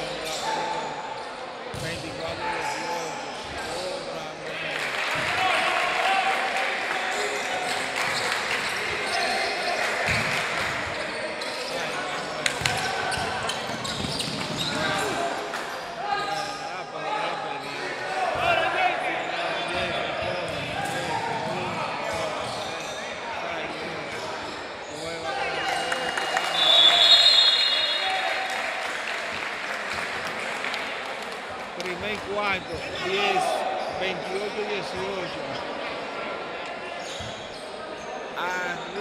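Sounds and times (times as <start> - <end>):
shoes squeaking on court floor: 7.2 - 16.7, 36.9 - 38.9
basketball bouncing: 10.1 - 10.4
referee's whistle: 26.4 - 28.4.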